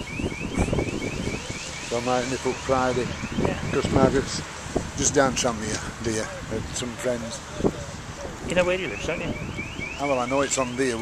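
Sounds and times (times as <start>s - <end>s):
rising alarm chirps: 0.0s - 4.0s
wind buffeting microphone: 0.0s - 11.0s.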